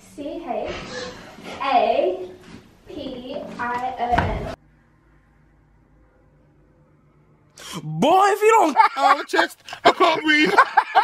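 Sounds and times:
man speaking: 7.7s - 10.8s.

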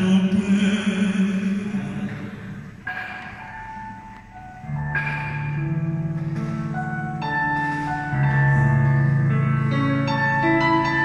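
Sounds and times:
electronic keyboard playing: 2.6s - 11.0s.

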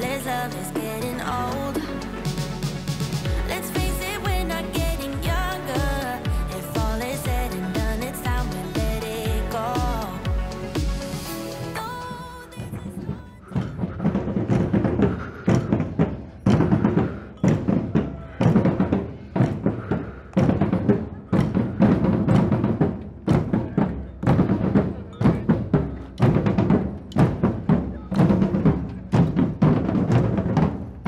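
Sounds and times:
heavy bass drum strokes: 0.0s - 31.0s
street drum band playing: 0.9s - 31.0s.

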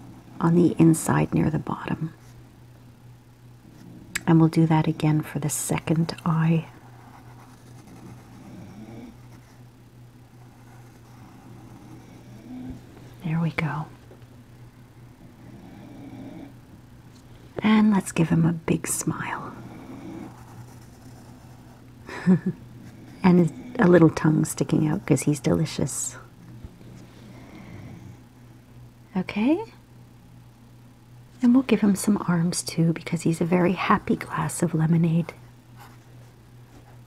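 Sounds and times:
steady low hum: 0.0s - 37.0s
pencil drawing on paper: 5.8s - 8.5s, 10.4s - 12.0s, 20.2s - 21.8s.

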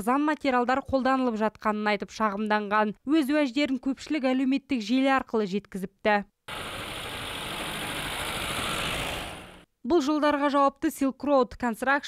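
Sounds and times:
car driving past: 6.5s - 9.7s.

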